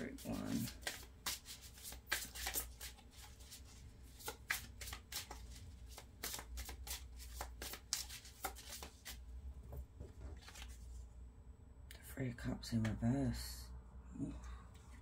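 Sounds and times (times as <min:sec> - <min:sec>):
cards being shuffled: 0:00.0 - 0:09.2, 0:10.2 - 0:11.0.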